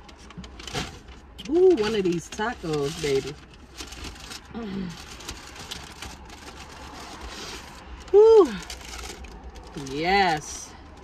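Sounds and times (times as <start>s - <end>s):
paper wrapper rustling and crinkling: 0.0s - 10.5s.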